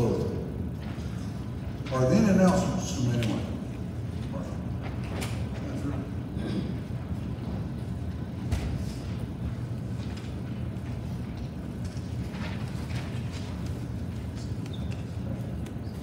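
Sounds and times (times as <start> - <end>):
hall room rumble: 0.0 - 16.0.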